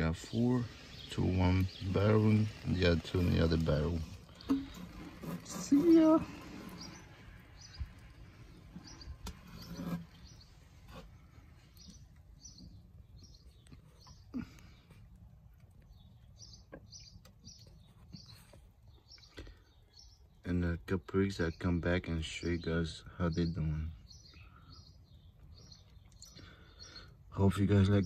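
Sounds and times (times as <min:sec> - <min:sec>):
small bird chirping: 0:00.1 - 0:28.0.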